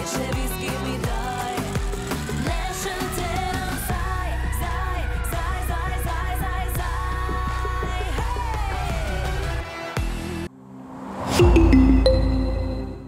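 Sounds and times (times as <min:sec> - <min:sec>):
woman singing: 0:00.0 - 0:09.3.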